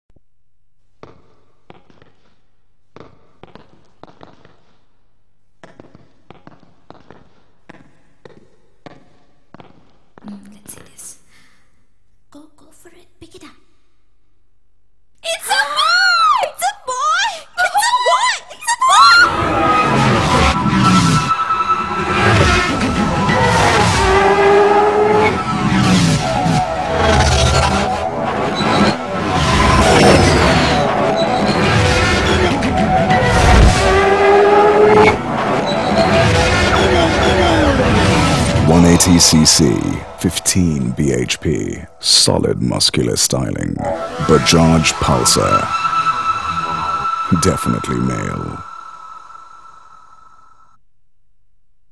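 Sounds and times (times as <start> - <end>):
motorcycle engine revving: 19.3 - 38.7
soundtrack music: 19.3 - 50.4
person whispering: 47.3 - 48.6.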